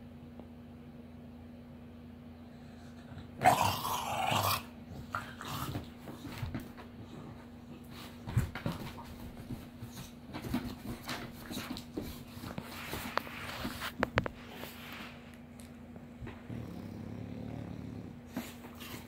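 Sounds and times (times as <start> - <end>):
dogs growling: 2.7 - 6.4, 16.2 - 19.0
dogs grunting: 2.8 - 6.2, 16.3 - 19.0.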